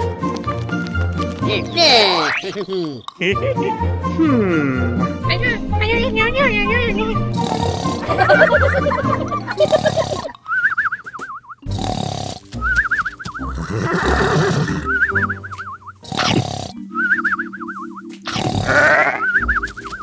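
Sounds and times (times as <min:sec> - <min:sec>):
background music: 0:00.0 - 0:20.0
cartoon snoring with whistle: 0:07.3 - 0:08.5, 0:09.5 - 0:10.7, 0:11.6 - 0:15.3, 0:15.9 - 0:17.2, 0:18.2 - 0:19.6.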